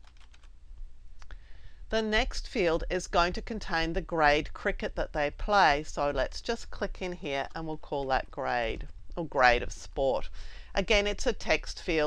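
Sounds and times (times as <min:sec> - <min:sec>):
computer keyboard keys clicking: 0:00.0 - 0:00.5.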